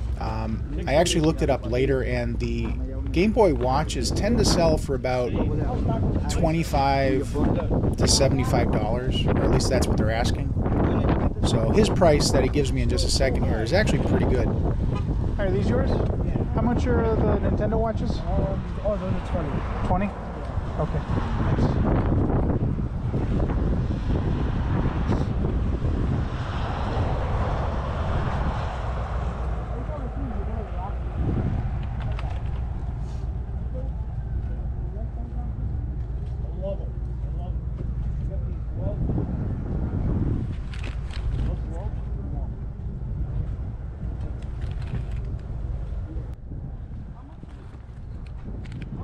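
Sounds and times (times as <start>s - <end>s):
indistinct voices: 0.0s - 14.6s
wind rumbling on microphone: 0.0s - 49.0s.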